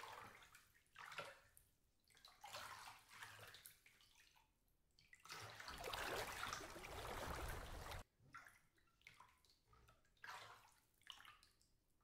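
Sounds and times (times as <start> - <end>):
shallow water splashing: 5.3 - 8.0.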